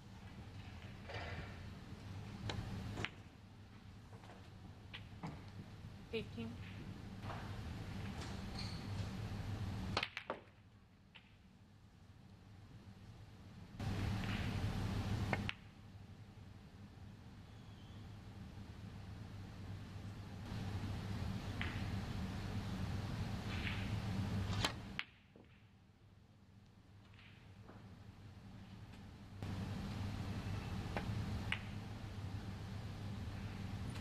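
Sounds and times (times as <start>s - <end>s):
low room hum: 0.0s - 34.0s
snooker balls clicking: 0.2s - 5.7s, 9.9s - 11.4s, 13.8s - 14.7s, 15.3s - 15.7s, 21.3s - 22.0s, 23.5s - 24.0s, 26.9s - 28.0s, 30.5s - 32.0s.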